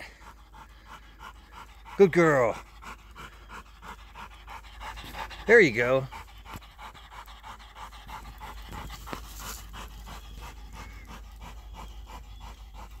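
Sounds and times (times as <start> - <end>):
dog panting: 0.0 - 13.0.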